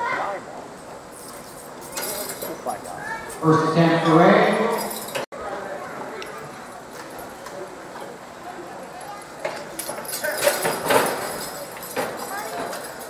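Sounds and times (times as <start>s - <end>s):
people's voices: 0.0s - 13.0s
harness gear clinking: 1.1s - 3.4s, 4.5s - 5.3s, 9.0s - 13.0s.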